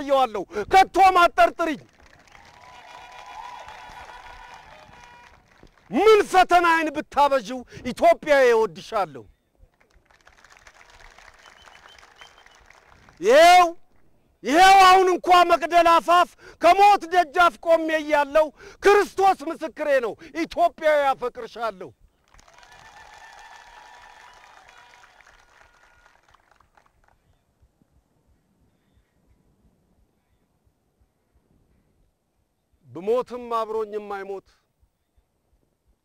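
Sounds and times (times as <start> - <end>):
faint audience clapping: 1.6 - 6.0, 9.7 - 13.4, 22.2 - 27.3.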